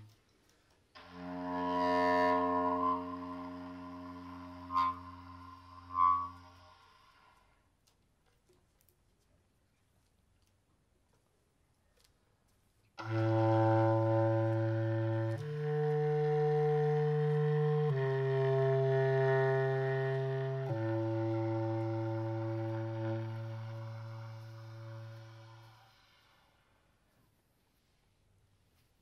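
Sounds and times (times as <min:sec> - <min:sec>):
bass clarinet low notes: 0:01.0 - 0:06.8, 0:13.0 - 0:26.1.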